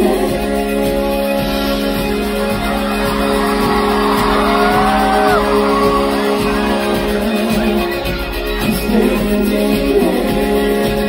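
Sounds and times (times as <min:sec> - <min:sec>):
guitar accompaniment: 0:00.0 - 0:11.0
vocal group singing: 0:00.0 - 0:11.0.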